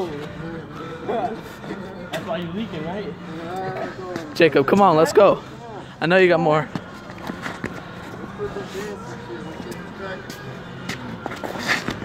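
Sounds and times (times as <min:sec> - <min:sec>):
onlookers murmuring: 0:00.0 - 0:12.0.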